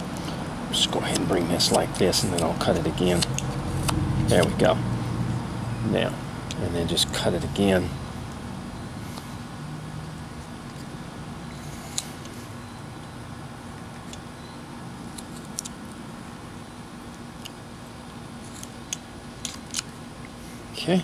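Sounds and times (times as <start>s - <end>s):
low background hum: 0.0s - 21.0s
knife clicks slicing wood: 1.1s - 3.5s.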